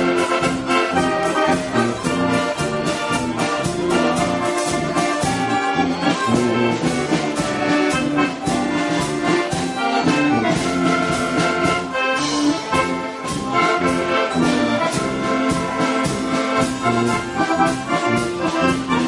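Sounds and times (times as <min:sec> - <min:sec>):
concertina playing polka: 0:00.0 - 0:19.0.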